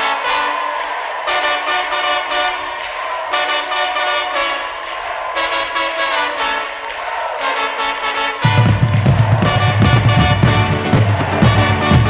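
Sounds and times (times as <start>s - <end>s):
trumpets and trombones playing chords: 0.0s - 12.0s
live band playing: 8.4s - 12.0s.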